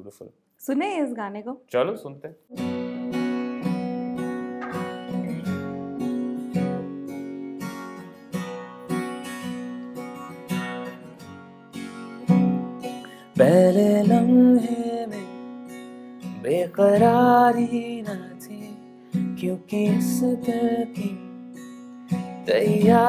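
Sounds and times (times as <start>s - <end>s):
acoustic guitar strumming chords: 2.5s - 23.0s
man singing: 13.3s - 15.4s, 16.4s - 21.3s, 22.4s - 23.0s.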